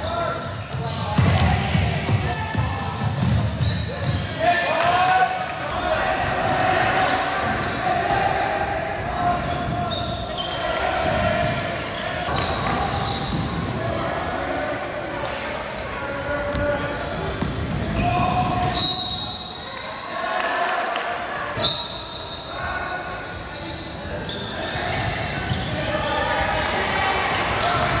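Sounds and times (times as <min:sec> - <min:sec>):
basketball bouncing on court: 0:00.6 - 0:04.3, 0:10.9 - 0:14.0, 0:16.4 - 0:18.8.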